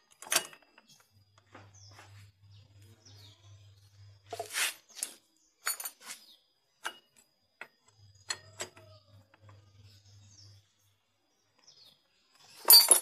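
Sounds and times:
metal tools clicking: 4.4 - 6.2, 12.6 - 13.0
metal clatter: 12.6 - 13.0.

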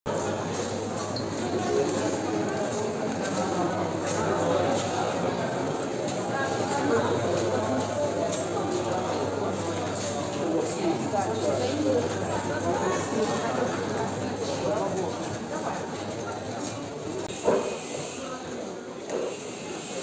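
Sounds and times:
indistinct chatter of people: 0.0 - 20.0.

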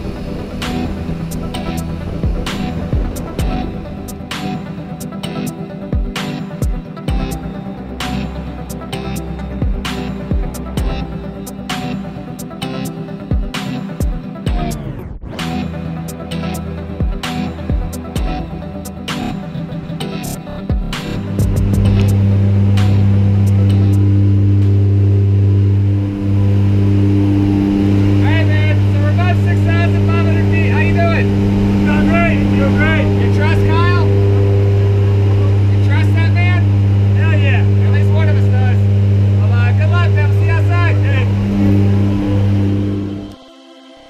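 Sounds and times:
light aircraft engines droning: 21.0 - 43.4
man speaking: 28.2 - 34.3, 35.3 - 38.8, 39.4 - 41.4.

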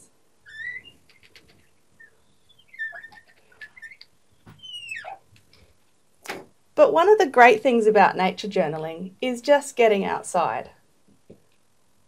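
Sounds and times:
marker squeaking on glass: 0.4 - 5.3.

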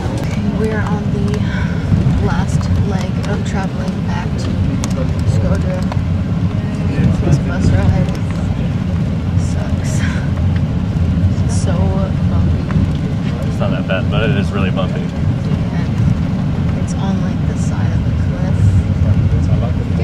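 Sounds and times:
person talking: 0.0 - 5.9, 6.6 - 8.6, 9.4 - 10.3, 13.4 - 16.0
bus engine and road rumble: 0.0 - 20.0.

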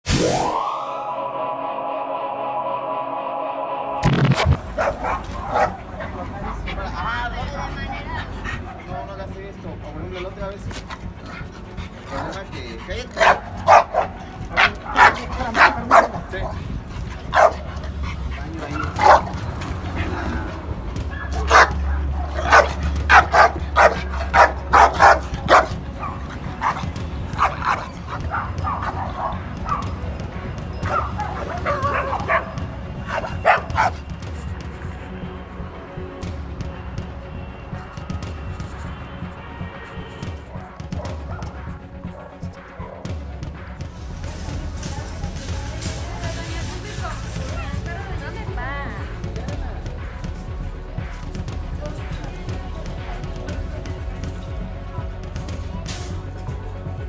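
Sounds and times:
dog barking: 4.8 - 6.1, 13.1 - 20.2, 21.0 - 30.0, 30.8 - 34.0, 40.8 - 41.6.

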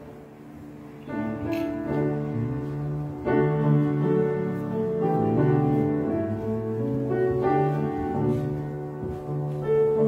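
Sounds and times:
slow keyboard chords: 0.0 - 10.0.

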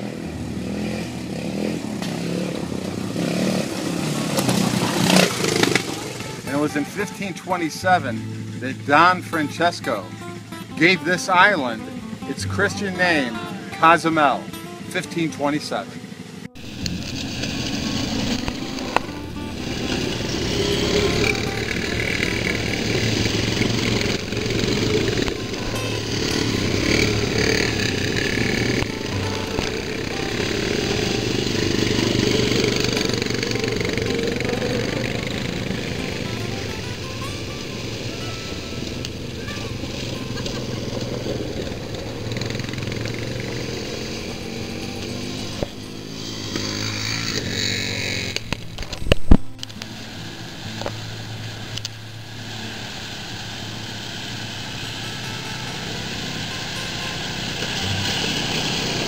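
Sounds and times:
music playing: 0.0 - 47.7, 49.0 - 59.0
quad bike engines revving: 0.0 - 59.0.

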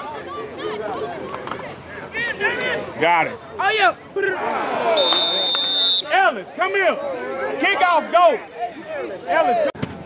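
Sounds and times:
referee's whistle blast: 5.0 - 6.1.

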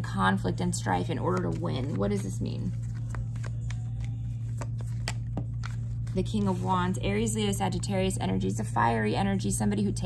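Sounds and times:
low hum: 0.0 - 10.0
cards shuffled by hand: 1.4 - 6.7.

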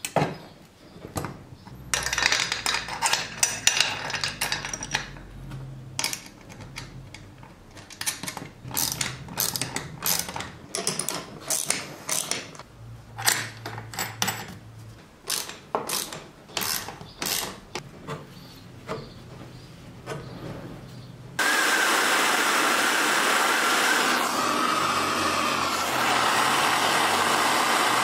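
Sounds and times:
metal parts clinking and scraping: 1.9 - 5.4, 6.0 - 12.6, 13.2 - 14.7, 15.3 - 17.8
ratchet clicking: 8.6 - 10.5, 15.3 - 17.6.

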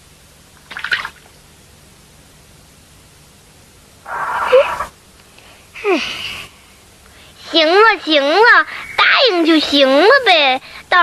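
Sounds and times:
person saying mm: 4.1 - 4.9.

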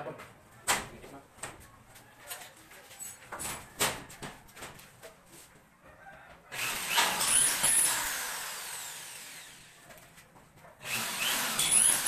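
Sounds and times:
electric drill whining: 6.6 - 9.8, 10.8 - 12.0.

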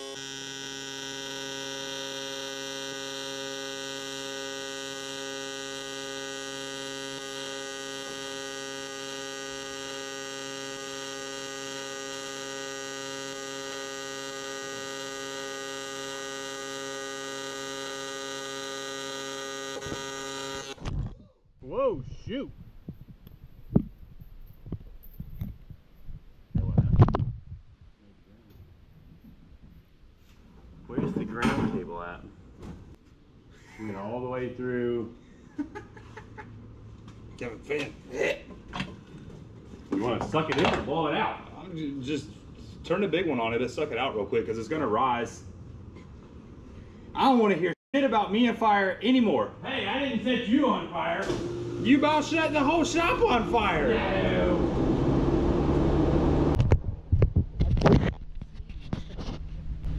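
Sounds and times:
welding arc buzz: 0.0 - 20.9, 51.2 - 56.6
workshop noises: 51.1 - 56.7.

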